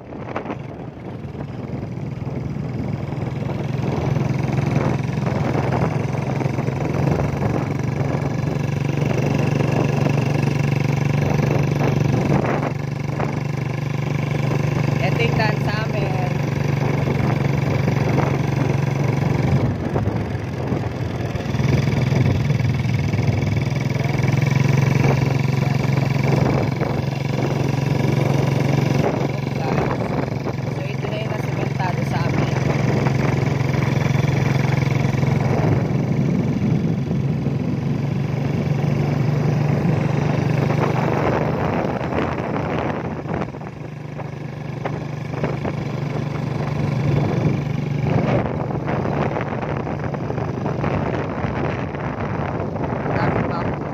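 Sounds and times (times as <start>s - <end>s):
road and air noise: 0.0s - 53.9s
small motorcycle engine running: 0.0s - 53.9s.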